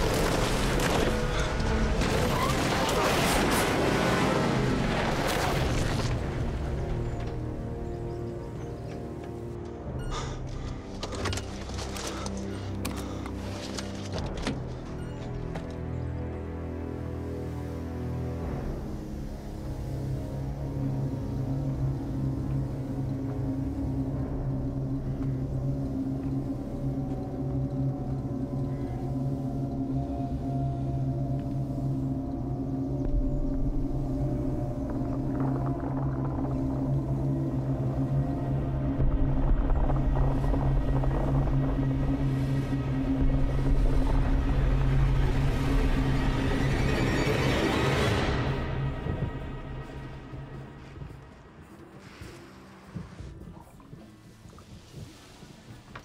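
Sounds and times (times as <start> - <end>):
suspenseful film score low tones: 0.0 - 56.0
deep rumble: 20.7 - 51.4.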